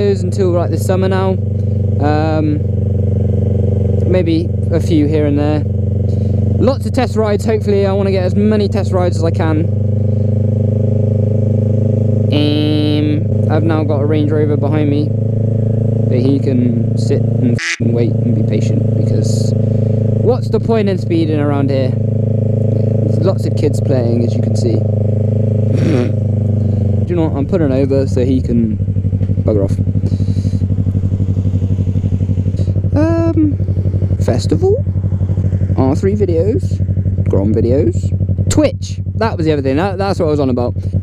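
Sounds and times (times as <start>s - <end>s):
motorcycle engine cruising: 0.0s - 41.0s.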